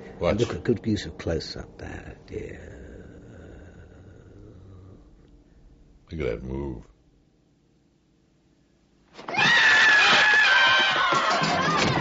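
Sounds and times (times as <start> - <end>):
loud shrill scream: 9.2 - 12.0.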